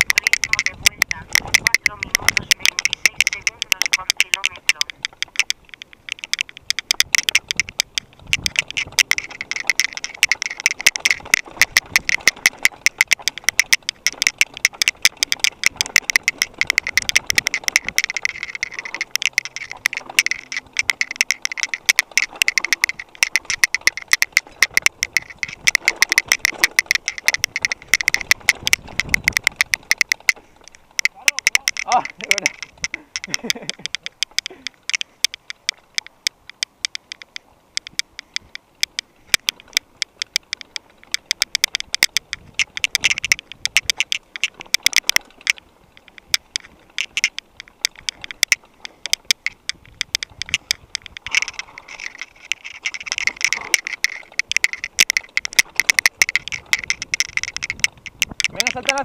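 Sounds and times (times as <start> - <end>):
bike rattling over dirt trail: 0.0 - 59.0.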